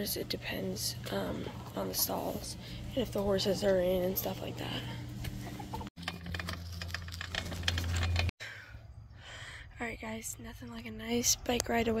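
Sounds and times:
outdoor noise: 0:00.0 - 0:12.0
bicycle clicking: 0:06.0 - 0:08.3.

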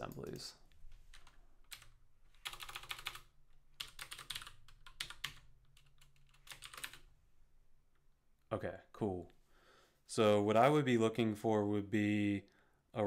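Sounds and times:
computer keyboard typing: 0:01.1 - 0:07.1.

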